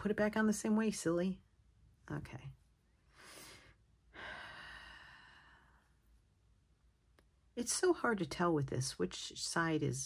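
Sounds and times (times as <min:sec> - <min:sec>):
woman breathing in: 0:03.1 - 0:05.9.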